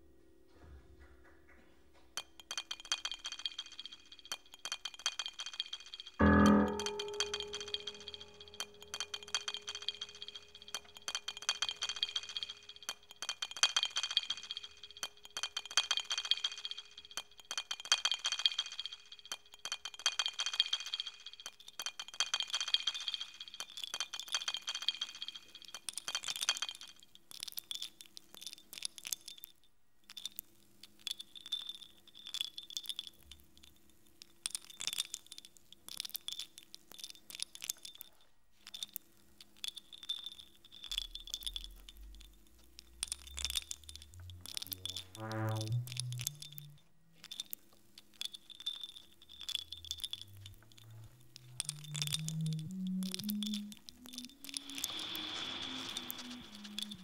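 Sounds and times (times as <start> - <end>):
glassy chiming: 2.2 - 26.7, 31.0 - 33.5, 38.7 - 57.0
high held tone: 6.2 - 9.2, 43.0 - 47.2, 49.7 - 57.0
climbing synthesized tones: 6.2 - 11.0, 40.9 - 47.6, 49.4 - 57.0
scattered clicks: 33.6 - 57.0
low drone: 43.0 - 47.0, 50.4 - 57.0.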